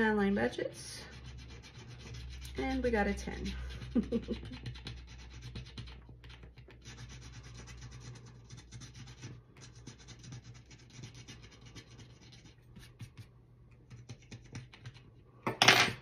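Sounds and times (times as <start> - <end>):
scratching scratch-off card: 1.1 - 15.1.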